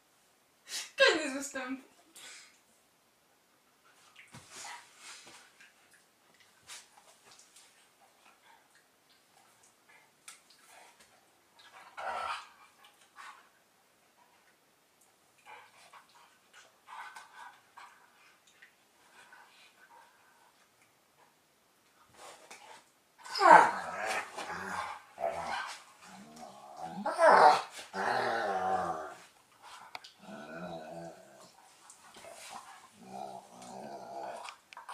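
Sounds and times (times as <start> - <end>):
dogs growling in play: 11.6 - 13.3, 23.2 - 34.9.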